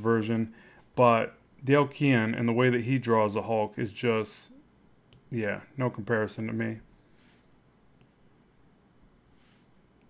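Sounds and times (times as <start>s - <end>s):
stylus strokes on screen: 7.0s - 9.8s.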